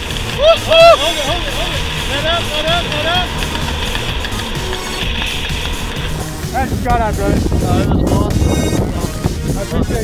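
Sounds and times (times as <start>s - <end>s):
wind rushing over microphone: 0.0s - 10.0s
man whooping: 0.3s - 1.2s.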